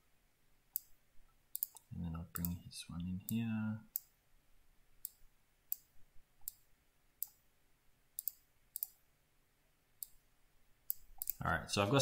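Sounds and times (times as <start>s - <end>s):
computer mouse clicking: 0.8s - 2.6s, 3.9s - 4.1s, 5.0s - 6.6s, 7.2s - 7.4s, 8.2s - 9.0s, 10.0s - 10.2s, 10.9s - 11.4s.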